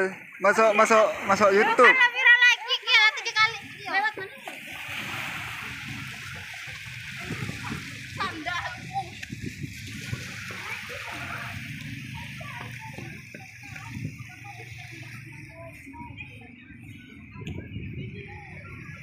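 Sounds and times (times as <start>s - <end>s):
waves breaking on shore: 0.0s - 15.9s.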